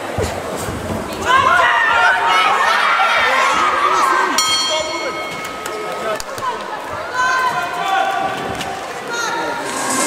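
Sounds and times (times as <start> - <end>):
boxing ring bell ringing: 4.4 - 5.6.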